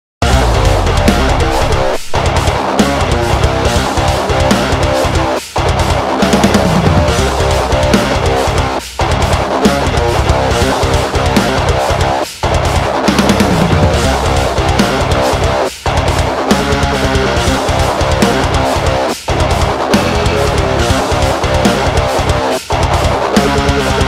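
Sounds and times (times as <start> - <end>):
distorted electric guitar riff: 0.2 - 24.0.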